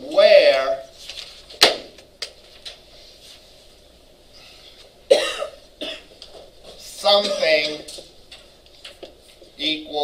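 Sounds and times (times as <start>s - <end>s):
man coughing: 5.1s - 6.1s.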